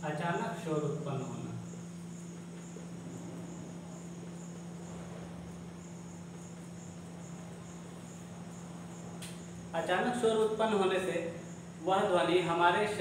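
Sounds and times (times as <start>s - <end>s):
cricket chirping: 0.0s - 13.0s.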